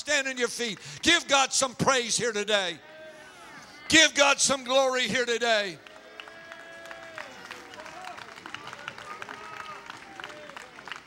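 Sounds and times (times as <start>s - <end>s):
hand claps: 5.8s - 11.0s.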